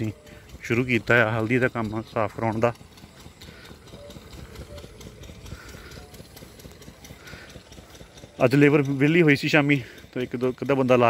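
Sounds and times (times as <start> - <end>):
footsteps on dirt path: 1.8 - 11.0.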